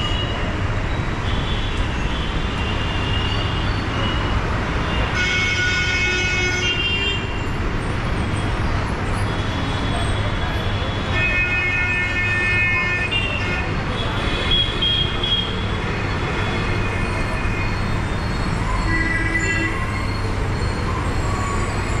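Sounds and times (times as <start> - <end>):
engine hum of traffic: 0.0 - 22.0
vehicle horns: 1.2 - 7.4, 10.8 - 20.0.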